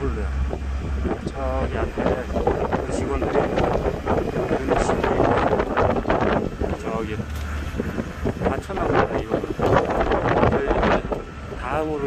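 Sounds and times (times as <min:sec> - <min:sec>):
vehicle motor and ride noise: 0:00.0 - 0:12.0
wind buffeting microphone: 0:00.0 - 0:12.0.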